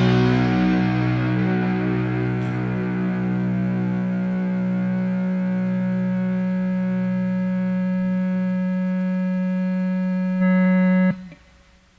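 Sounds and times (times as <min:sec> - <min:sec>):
distorted electric guitar drone: 0:00.0 - 0:11.9.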